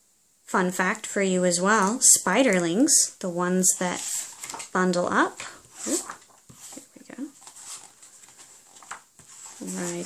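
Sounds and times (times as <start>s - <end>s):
book pages turning: 3.8s - 10.0s.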